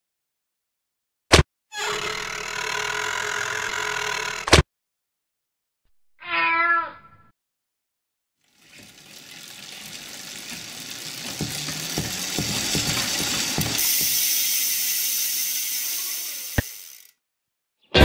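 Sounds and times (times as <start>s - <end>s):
cat meowing: 6.2s - 7.3s
hissing sound: 11.2s - 17.1s.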